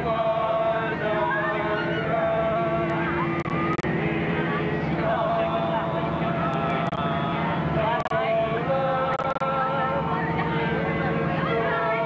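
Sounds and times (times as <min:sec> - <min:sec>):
moving bus rumble: 0:00.0 - 0:12.0
teenagers singing and talking: 0:00.0 - 0:12.0.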